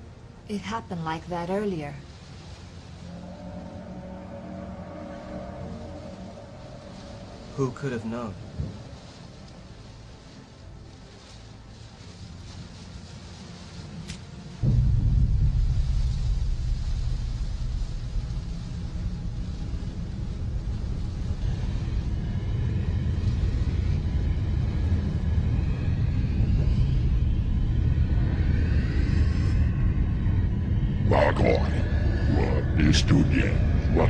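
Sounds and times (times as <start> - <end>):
deep low rumbling drone: 0.0 - 34.0
faint high wavering tones: 1.2 - 13.8.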